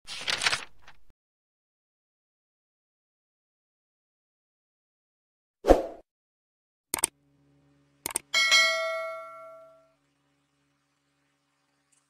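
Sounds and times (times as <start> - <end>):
mouse-click sound effects: 8.0 - 8.3
notification bell ding: 8.4 - 9.9.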